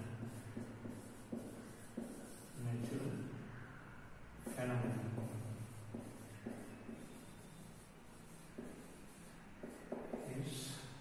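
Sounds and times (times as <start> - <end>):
marker scratching on whiteboard: 0.0 - 3.3, 4.4 - 10.7.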